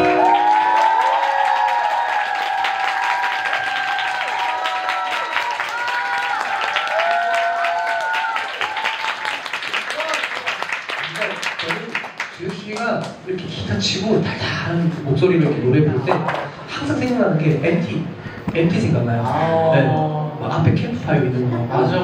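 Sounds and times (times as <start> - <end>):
audience applauding: 0.0 - 13.2.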